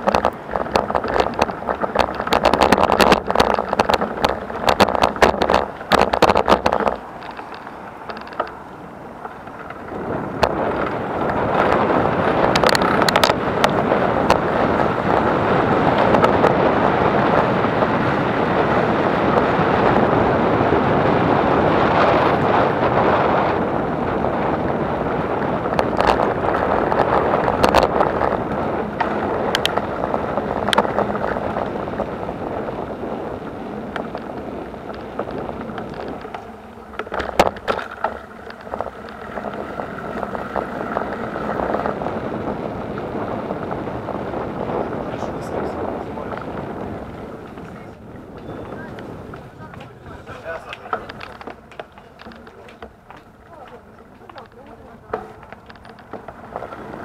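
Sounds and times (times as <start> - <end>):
wheels rolling over brick paving: 0.0 - 57.0
wind buffeting microphone: 0.0 - 57.0.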